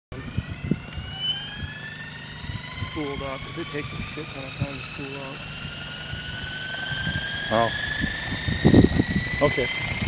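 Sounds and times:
model helicopter motor whine: 0.2s - 10.0s.

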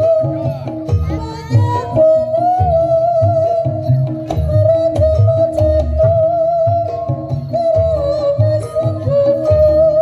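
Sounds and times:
high wavering melody: 0.0s - 10.0s
low drum rhythm: 0.0s - 10.0s.

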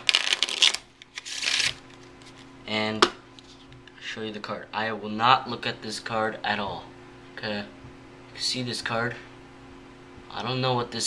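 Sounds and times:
playing cards being shuffled: 0.0s - 2.5s.

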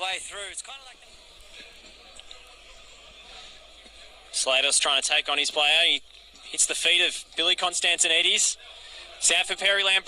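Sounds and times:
football match stadium ambience: 0.0s - 10.0s.

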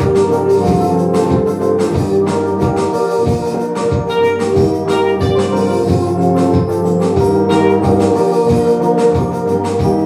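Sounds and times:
drums: 0.0s - 10.0s
organ chords: 0.0s - 10.0s.

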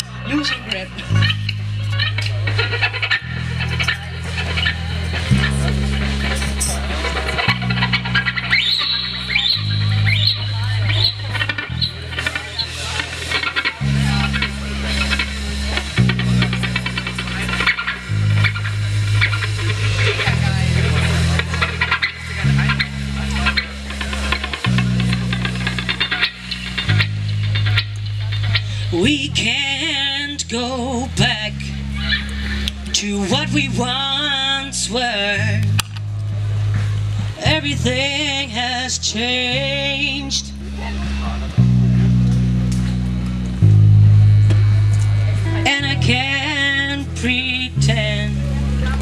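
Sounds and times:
rock band playing: 0.0s - 29.0s
electric bass low notes: 0.0s - 49.0s.

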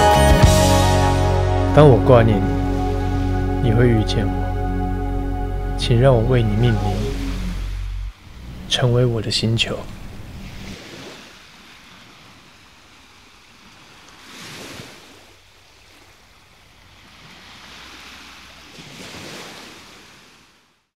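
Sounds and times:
sea waves washing in: 0.0s - 20.7s.

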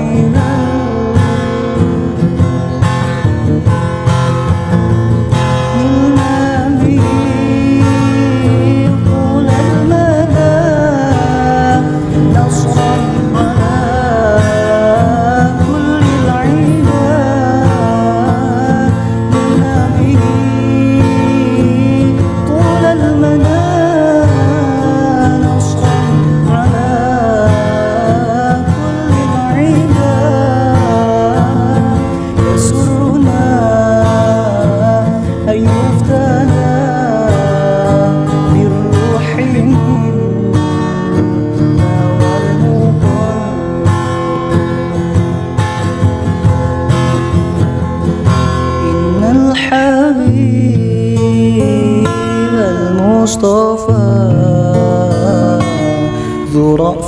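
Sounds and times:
steady bass: 0.0s - 37.3s
strummed acoustic guitar: 0.0s - 57.0s.

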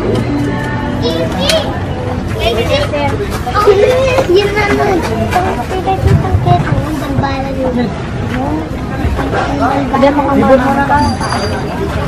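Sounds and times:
children chattering in crowd: 0.0s - 12.0s.

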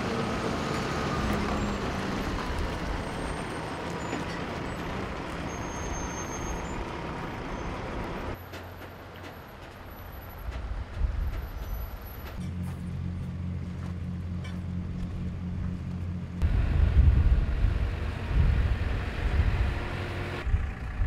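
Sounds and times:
outdoor background: 0.0s - 21.0s
truck engine and tyre noise: 0.0s - 21.0s.

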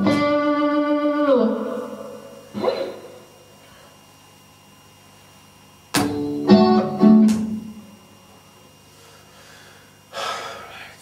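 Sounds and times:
person breathing sharply: 8.9s - 11.0s.

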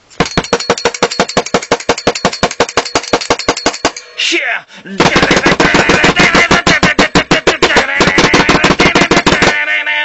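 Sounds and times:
rapid drum hits: 0.2s - 4.0s, 5.0s - 9.6s.

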